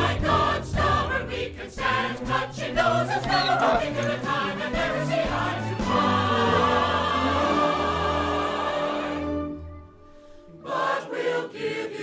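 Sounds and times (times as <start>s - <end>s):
chorus singing a show tune: 0.0s - 9.7s, 10.5s - 12.0s.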